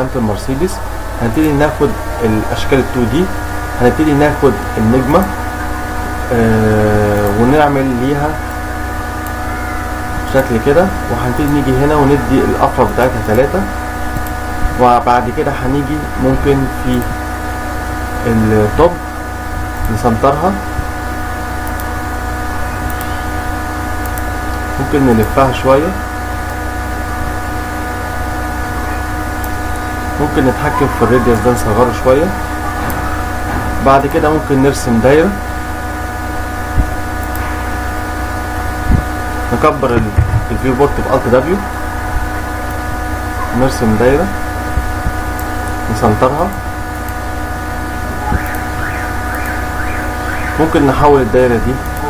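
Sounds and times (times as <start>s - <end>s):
electrical hum and hiss: 0.0s - 52.0s
faint warbling tone: 9.3s - 10.4s, 22.4s - 23.7s, 28.6s - 34.7s, 47.9s - 52.0s
click: 14.2s - 14.4s, 21.6s - 21.9s, 24.0s - 24.3s.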